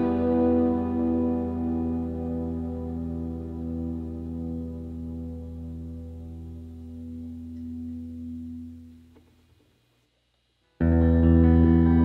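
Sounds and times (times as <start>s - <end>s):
live band sustained chord: 0.0s - 8.8s, 10.8s - 12.0s.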